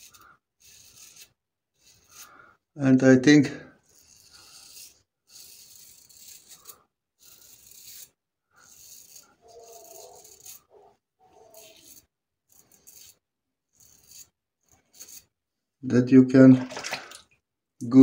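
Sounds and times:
razor scraping stubble: 0.0s - 15.4s.

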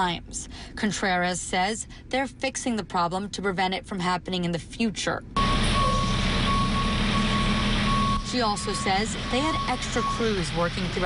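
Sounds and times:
truck engine rumbling: 5.3s - 11.0s
backup alarm beeping: 5.4s - 11.0s.

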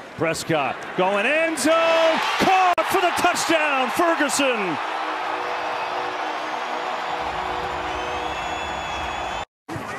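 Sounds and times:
stadium crowd cheering: 0.3s - 9.5s.

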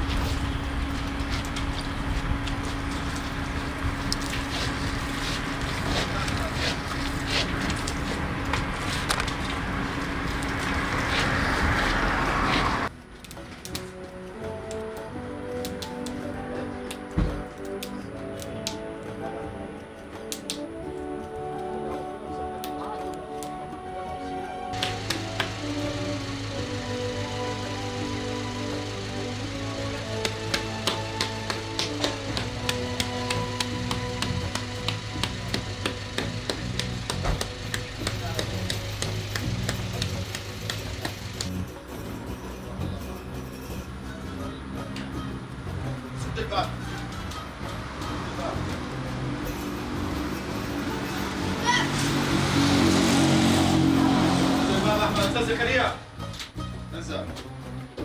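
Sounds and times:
motor engine humming: 0.0s - 13.0s, 24.0s - 56.2s
background music with held notes: 12.9s - 58.0s
hands slapping wet clay: 20.3s - 20.7s, 30.2s - 41.6s.

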